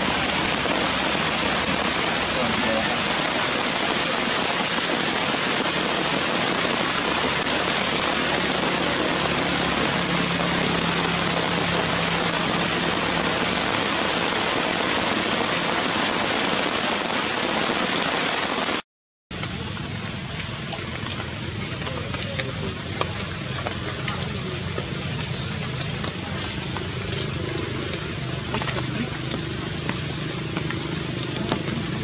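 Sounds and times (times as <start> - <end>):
heavy rain on wet ground: 0.0 - 32.0.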